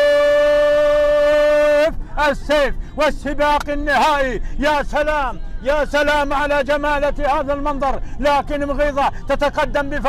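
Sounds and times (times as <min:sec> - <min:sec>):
man chanting long note: 0:00.0 - 0:01.9.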